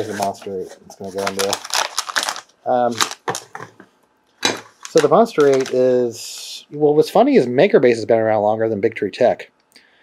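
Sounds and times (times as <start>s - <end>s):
plastic bag crinkling: 0.0s - 3.7s, 4.4s - 6.0s.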